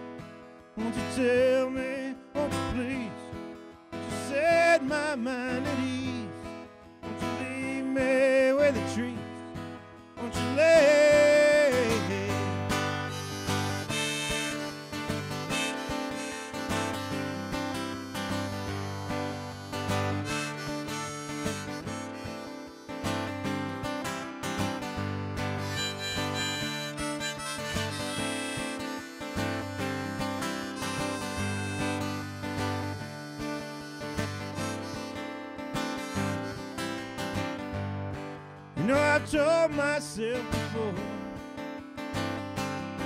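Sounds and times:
harmonica: 0.0s - 43.0s
strummed acoustic guitar: 0.0s - 43.0s.

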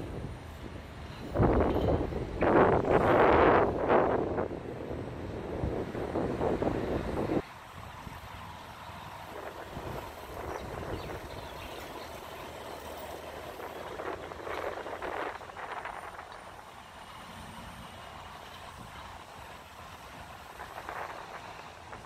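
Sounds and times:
wind on microphone: 0.0s - 8.3s, 9.3s - 12.4s, 13.0s - 16.6s, 18.6s - 22.0s
traffic rumble: 0.0s - 22.0s.

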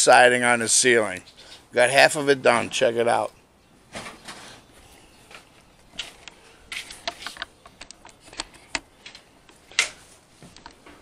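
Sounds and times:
camera handling clicks and rustles: 5.3s - 10.8s.

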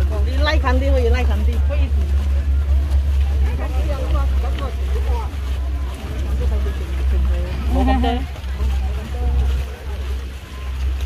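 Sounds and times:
people talking while walking: 0.0s - 11.0s
steady low rumble: 0.0s - 11.0s.

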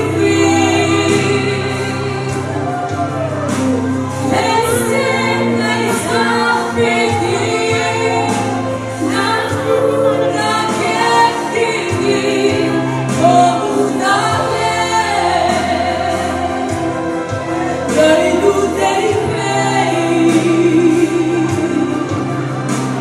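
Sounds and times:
instrumental accompaniment: 0.0s - 23.0s
woman singing into microphone: 0.0s - 23.0s.

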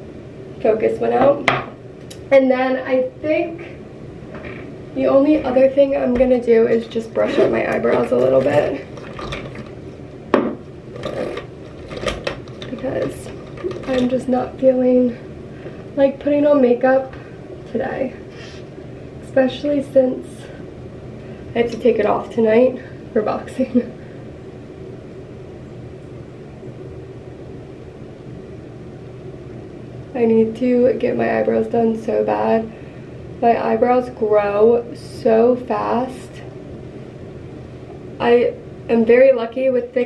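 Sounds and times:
low room hum: 0.0s - 40.0s.

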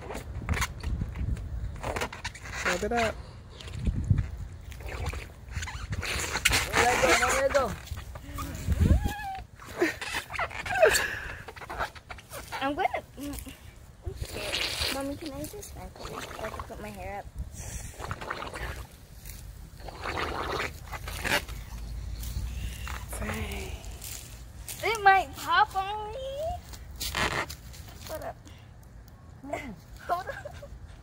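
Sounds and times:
breaths blown into balloon: 14.1s - 15.1s, 17.5s - 19.0s, 19.8s - 24.1s.

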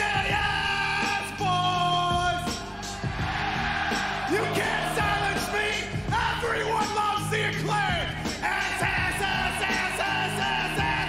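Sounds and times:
loud entrance music: 0.0s - 11.0s.

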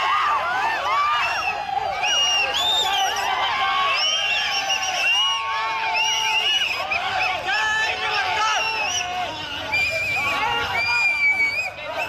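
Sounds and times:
crowd of fans shouting: 0.0s - 12.0s
shrill whistles: 1.4s - 3.3s, 3.9s - 7.4s, 8.5s - 12.0s.

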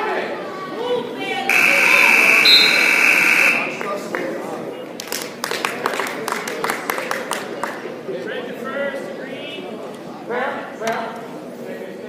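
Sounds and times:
spectators' voices: 0.0s - 10.4s
scoreboard buzzer blare: 1.5s - 3.8s.

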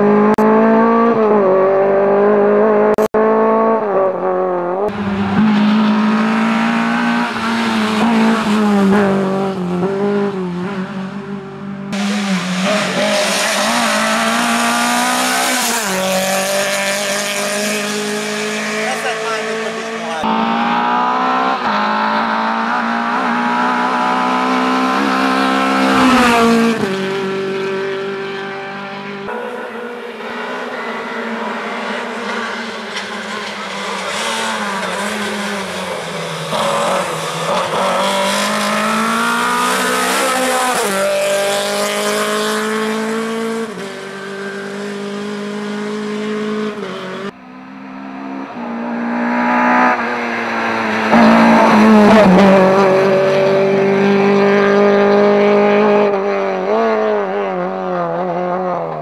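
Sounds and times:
rally car engine revving: 0.0s - 59.0s.

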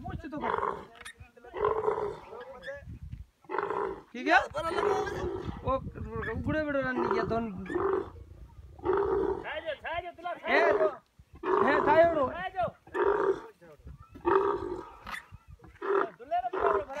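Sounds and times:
camel groaning calls: 3.5s - 5.6s, 6.2s - 9.6s, 10.5s - 13.5s, 14.1s - 17.0s.

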